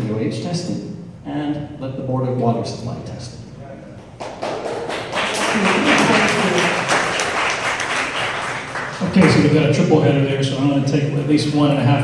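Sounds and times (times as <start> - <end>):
audience applauding: 4.1 - 9.5
voices: 5.2 - 7.4.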